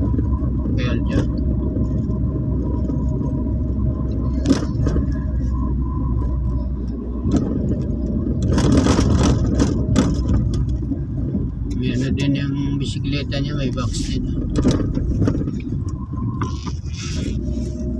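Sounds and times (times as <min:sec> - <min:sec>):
car engine and tyres rumbling: 0:00.0 - 0:17.9.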